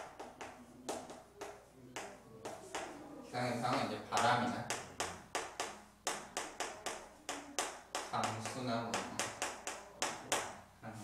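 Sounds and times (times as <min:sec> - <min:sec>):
chalk tapping and scratching: 0:00.0 - 0:10.6.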